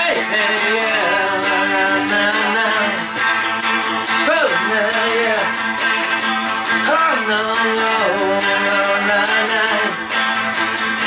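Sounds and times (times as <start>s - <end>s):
electric guitar strumming: 0.0s - 11.0s.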